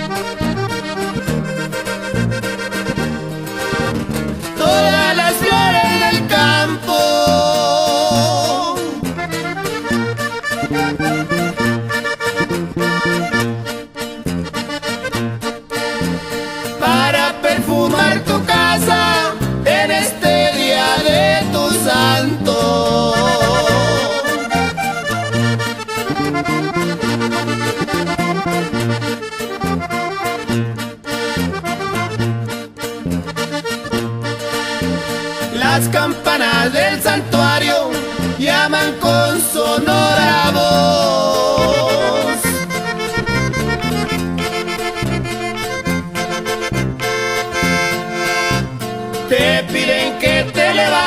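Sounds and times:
alternating bass line: 0.0 - 51.0
band with button accordion: 0.0 - 51.0
wavering vocal: 4.6 - 9.1, 16.8 - 24.9, 35.5 - 42.7, 49.3 - 51.0.

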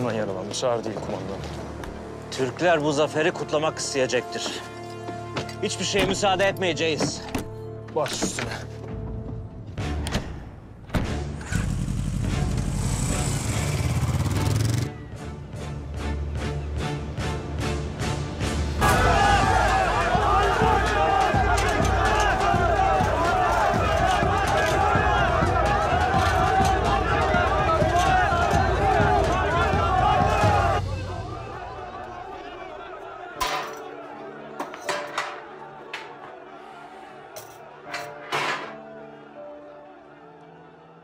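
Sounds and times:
quiet background music: 0.0 - 41.0
crowd shouting and cheering: 18.7 - 41.0.

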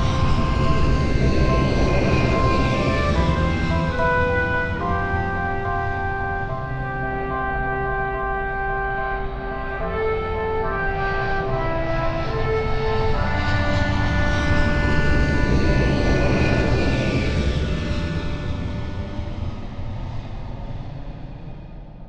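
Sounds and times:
aircraft passing overhead: 0.0 - 22.0.

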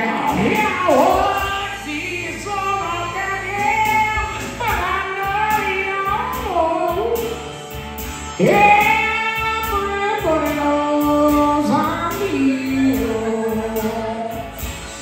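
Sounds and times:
band accompaniment: 0.0 - 15.0
electric blues lead guitar: 0.0 - 15.0.

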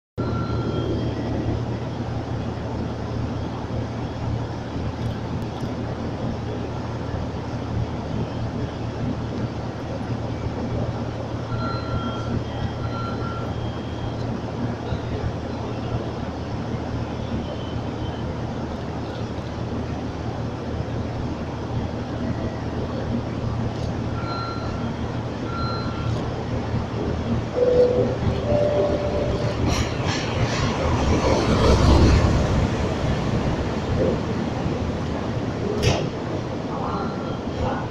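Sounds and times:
diesel locomotive pulling in: 0.2 - 37.9
diesel trains idling: 20.0 - 37.9
short high-pitched beeps: 27.6 - 29.6.

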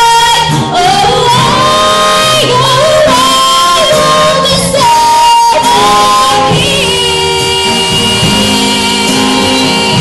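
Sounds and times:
band with guitar: 0.0 - 10.0.

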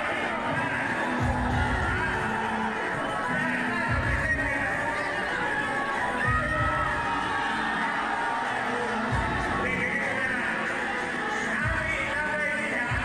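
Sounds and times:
crowd shouting and cheering: 0.0 - 13.0
large crowd noise: 0.0 - 13.0
music playing: 0.0 - 13.0.

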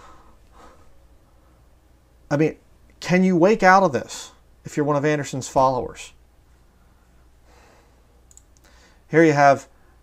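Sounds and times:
soft breath: 0.0 - 1.7, 6.6 - 9.1
small clicks: 8.2 - 8.7.

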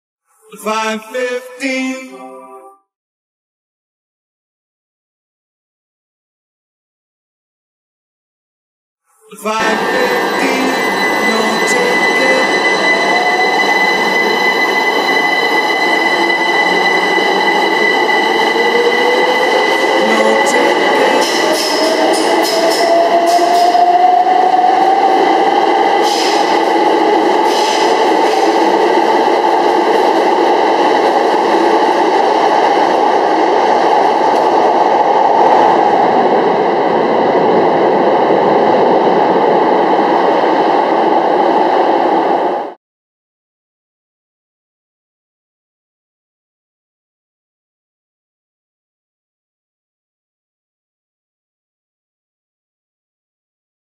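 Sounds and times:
electric train rumbling: 9.3 - 42.8.

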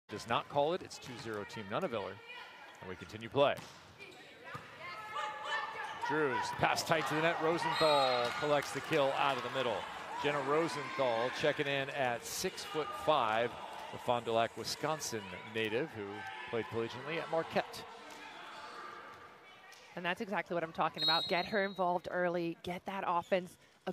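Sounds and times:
faint volleyball contacts: 0.1 - 23.5
faint crowd voices: 0.2 - 21.8
shoes squeaking on court: 3.6 - 4.8.

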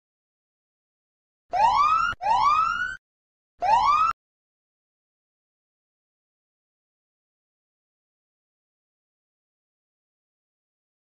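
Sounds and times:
rising electronic alarm whoops: 1.5 - 3.0, 3.6 - 4.2.

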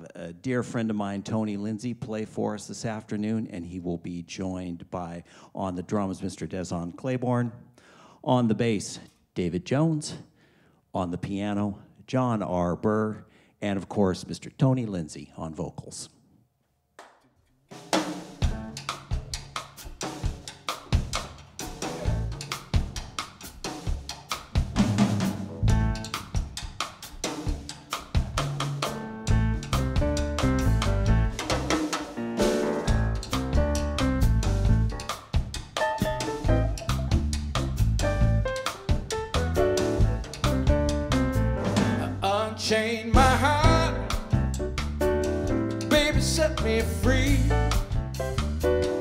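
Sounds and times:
drum kit playing: 17.7 - 49.0
electric bass guitar: 21.8 - 22.5, 25.4 - 26.4, 28.2 - 49.0
grand piano: 25.2 - 26.2, 28.7 - 49.0.

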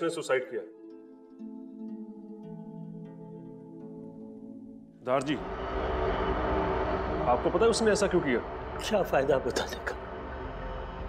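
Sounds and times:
low background rumble: 5.2 - 11.0.

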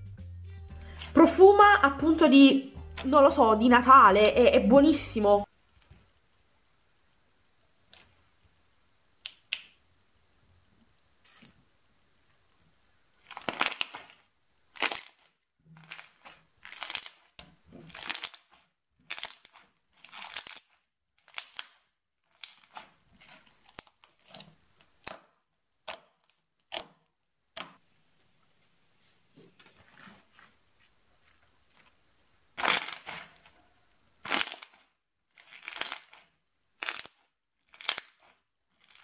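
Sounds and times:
slime crackling and squishing: 13.1 - 27.8, 29.7 - 39.0.

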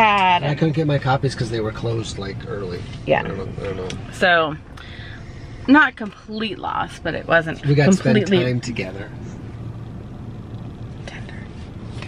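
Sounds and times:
car cabin rumble and hum: 0.0 - 12.0.

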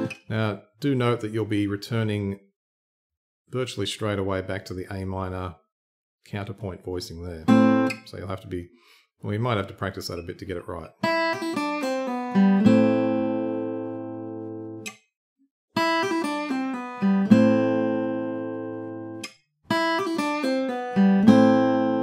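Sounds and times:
acoustic guitar picked notes: 0.0 - 0.2, 7.5 - 8.0, 11.0 - 15.0, 15.8 - 22.0.

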